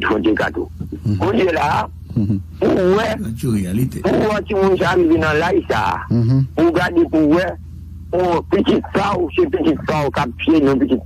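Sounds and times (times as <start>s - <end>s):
low electrical hum: 0.0s - 11.0s
man speaking: 1.0s - 1.4s, 2.2s - 2.4s, 3.0s - 4.3s, 6.1s - 6.6s.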